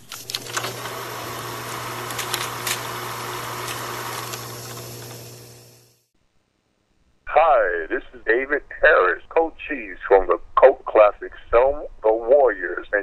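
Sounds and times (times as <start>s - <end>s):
mechanical whirring: 0.0s - 6.0s.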